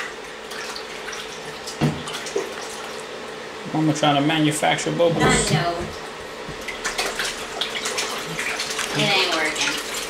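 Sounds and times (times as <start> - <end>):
bath water splashing by hand: 6.0 - 10.0.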